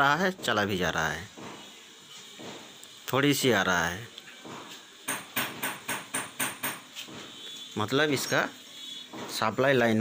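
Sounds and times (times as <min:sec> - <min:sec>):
rapid sharp knocks: 0:05.0 - 0:06.9.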